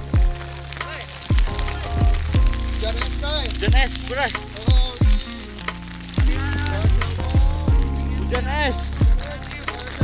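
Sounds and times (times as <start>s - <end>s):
deep thudding beat: 0.0s - 0.4s, 1.3s - 9.2s
background music: 0.0s - 10.0s
hailstones pattering: 0.0s - 10.0s.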